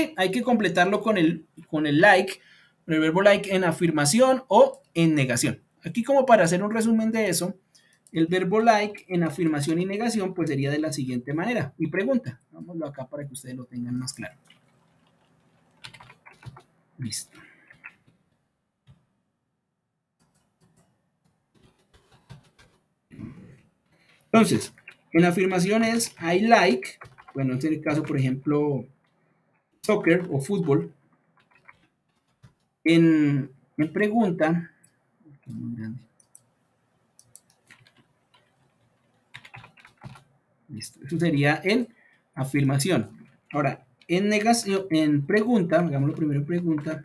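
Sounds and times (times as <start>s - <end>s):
typing on computer keyboard: 14.1s - 16.8s, 17.5s - 19.0s, 20.2s - 22.8s, 24.1s - 28.4s, 29.9s - 32.7s, 37.2s - 40.3s.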